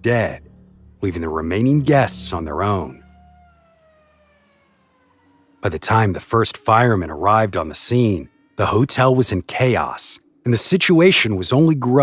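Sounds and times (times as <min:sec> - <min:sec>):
faint siren-like tone: 0:00.0 - 0:10.7.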